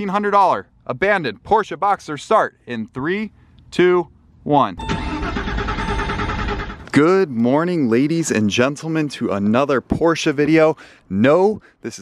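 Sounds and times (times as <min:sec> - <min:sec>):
car engine cranking: 0:04.8 - 0:07.0.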